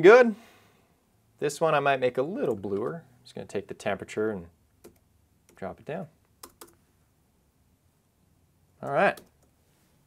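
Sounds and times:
computer clicks: 6.3 - 6.8.

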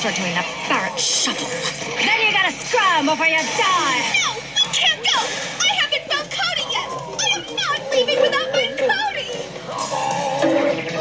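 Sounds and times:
cartoon voices talking from tv: 0.0 - 9.8.

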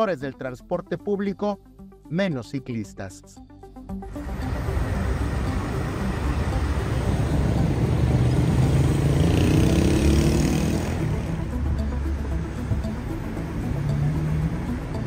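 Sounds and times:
engine rising in pitch: 4.0 - 15.0
cars driving past: 4.1 - 15.0.

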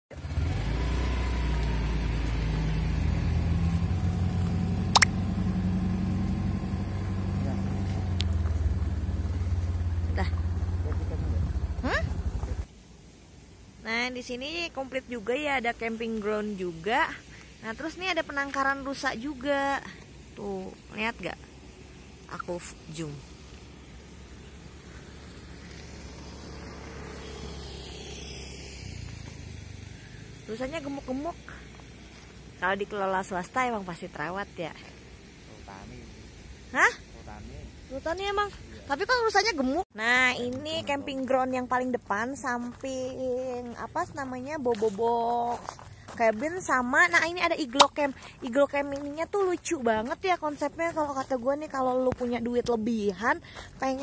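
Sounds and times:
car engine running: 0.1 - 13.2, 14.3 - 54.0
brief sharp sound: 4.9 - 5.2.

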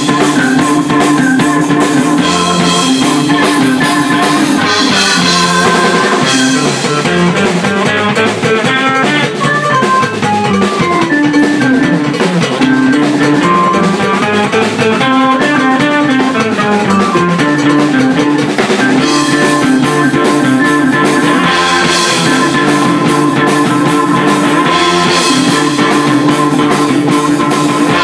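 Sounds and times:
drum kit beat: 0.0 - 28.0
electric guitar: 0.0 - 28.0
keyboard notes: 0.0 - 28.0
rock band playing live: 0.0 - 28.0.

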